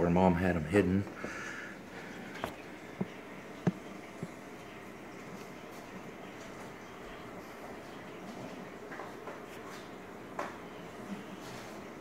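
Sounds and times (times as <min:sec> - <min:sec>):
aquarium air stone bubbling: 0:01.1 - 0:07.9.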